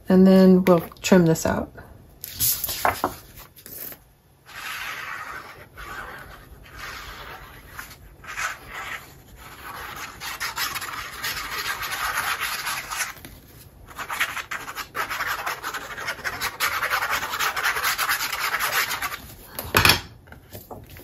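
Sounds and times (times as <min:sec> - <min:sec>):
glue bottle tip scratching paper: 0:04.5 - 0:13.2, 0:13.9 - 0:19.2.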